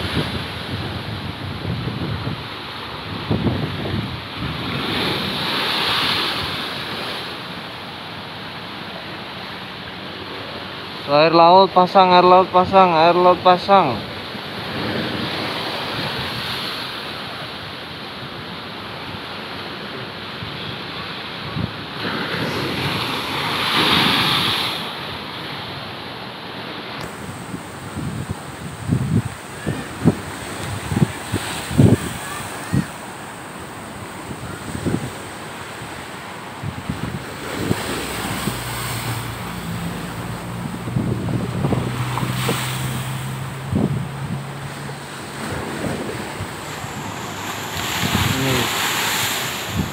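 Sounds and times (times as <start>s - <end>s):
wind buffeting microphone: 0.0s - 5.6s, 27.0s - 49.9s
surf breaking against a seawall: 0.0s - 7.7s, 18.9s - 26.0s, 26.6s - 49.9s.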